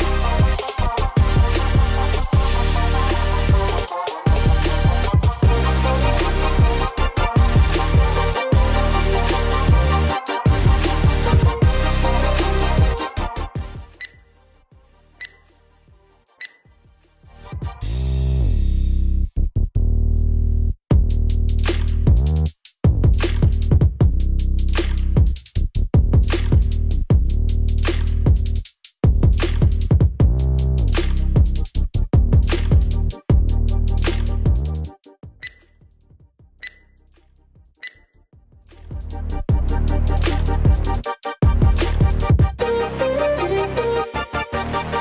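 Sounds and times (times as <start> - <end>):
electronic timer beeps: 14.0 - 14.2, 15.2 - 15.4, 16.4 - 16.6, 35.4 - 35.8, 36.6 - 37.0, 37.8 - 38.1.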